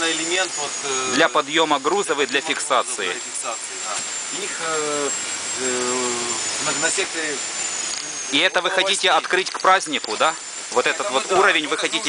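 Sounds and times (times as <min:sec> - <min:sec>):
steady rushing machine noise: 0:00.0 - 0:12.0
thin high whine: 0:00.0 - 0:12.0.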